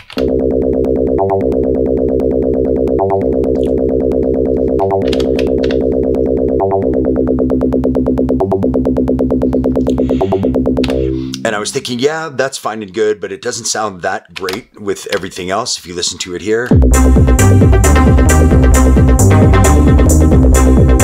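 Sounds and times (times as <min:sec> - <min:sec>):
synth bassline: 0:00.2 - 0:12.1, 0:16.7 - 0:21.0.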